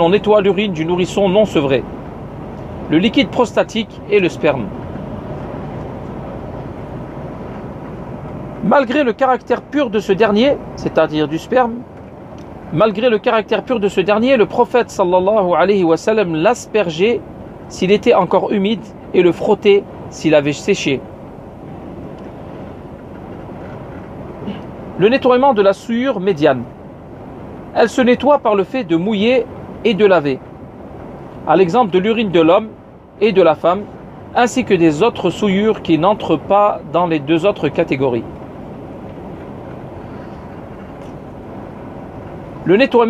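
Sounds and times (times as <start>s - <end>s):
car driving road noise: 0.0s - 43.0s.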